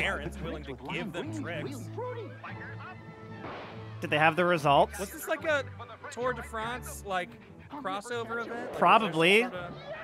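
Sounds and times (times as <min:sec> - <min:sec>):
commercial music: 0:00.0 - 0:10.0.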